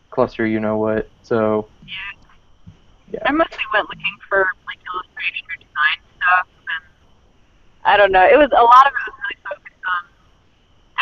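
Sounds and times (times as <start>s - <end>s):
woman speaking: 1.9s - 2.2s, 3.2s - 6.8s, 7.9s - 10.0s
woman laughing: 8.5s - 9.6s.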